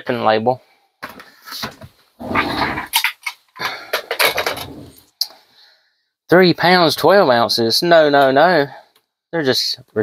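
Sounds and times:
dog making rough low sounds: 2.2 - 2.9.

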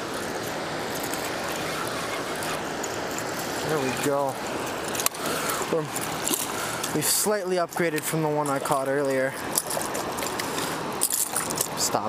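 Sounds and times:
fish splashing: 0.0 - 7.0, 8.0 - 11.8
river current running: 0.0 - 12.0.

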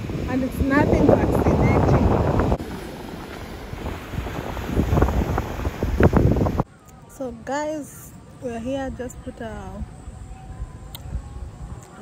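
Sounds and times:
wind blowing across microphone: 0.0 - 6.7, 8.4 - 12.0.

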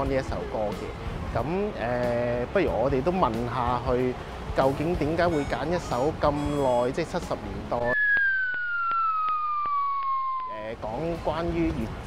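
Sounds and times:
whistle tone gliding down: 7.8 - 10.8.

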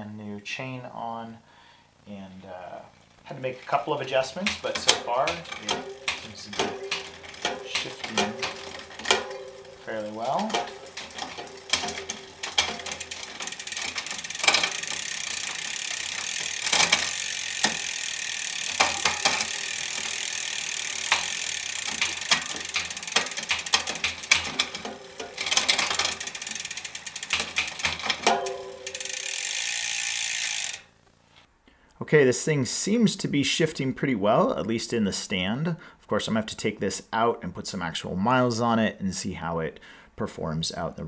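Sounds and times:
bike chain rattling: 3.1 - 30.9
derailleur shifting clicks: 4.0 - 30.9.

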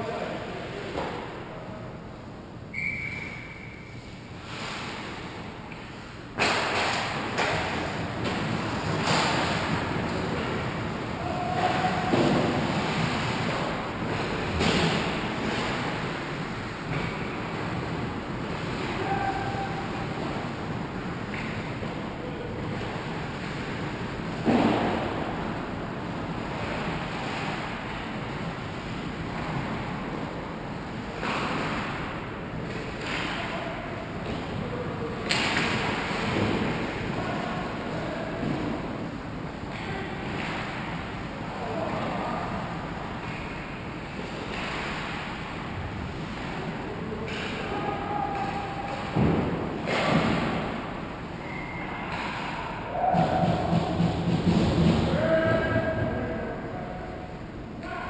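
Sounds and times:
hockey sticks and puck clacking: 6.4 - 22.0, 31.2 - 34.6, 35.2 - 37.2, 39.6 - 41.2, 43.2 - 50.9, 51.5 - 55.4.

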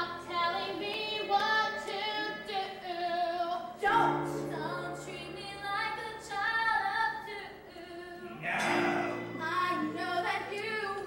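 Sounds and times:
young female voices singing: 0.0 - 11.0.

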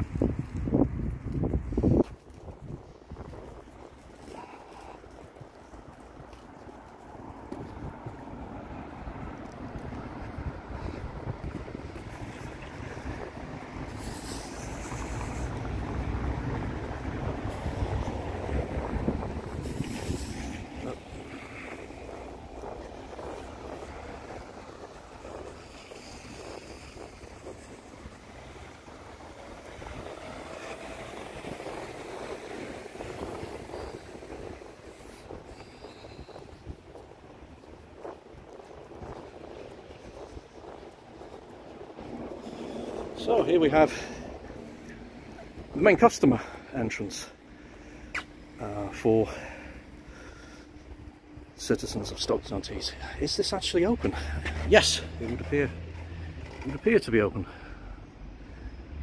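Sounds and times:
wind on microphone: 0.0 - 46.0
road traffic: 0.0 - 59.0.

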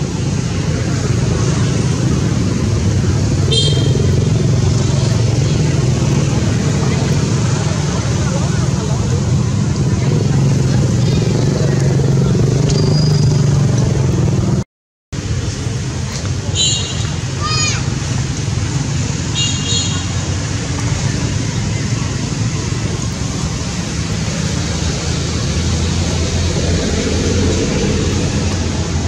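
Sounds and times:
short high squeak: 12.7 - 13.4.

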